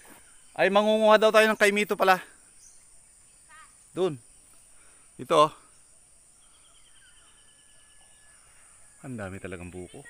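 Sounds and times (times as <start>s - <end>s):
high insect drone: 0.0s - 10.0s.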